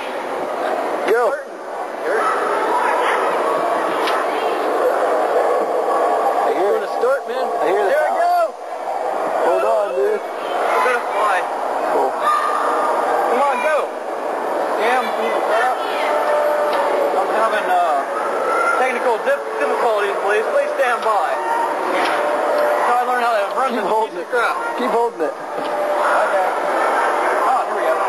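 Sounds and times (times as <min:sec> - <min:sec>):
indistinct voices: 0:00.0 - 0:28.0.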